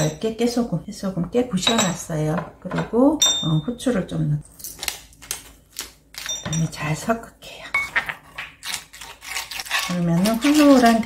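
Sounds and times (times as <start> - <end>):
wooden spoon scraping a bowl: 7.8 - 11.0.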